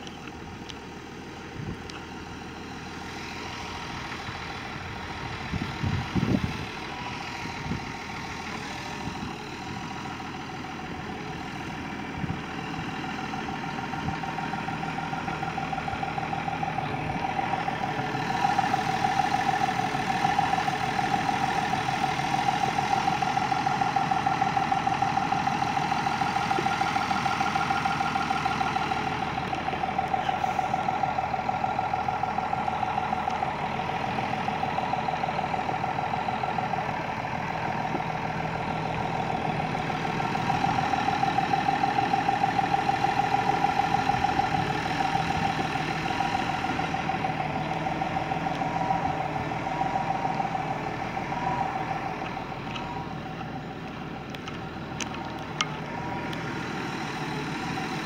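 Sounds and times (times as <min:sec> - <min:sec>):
tractor diesel engine idling: 0:00.0 - 0:58.0.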